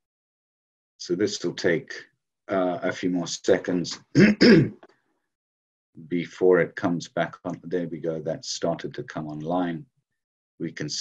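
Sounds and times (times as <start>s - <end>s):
man clearing his throat: 4.1s - 4.8s.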